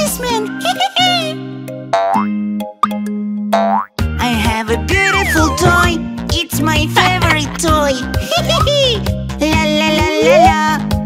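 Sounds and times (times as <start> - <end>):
children's background music: 0.0 - 11.0
cartoon springy sound effects: 5.1 - 6.0.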